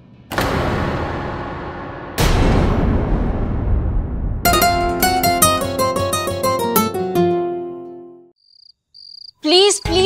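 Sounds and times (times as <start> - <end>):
plucked-string music: 4.5 - 8.3
crickets chirping: 8.4 - 10.0.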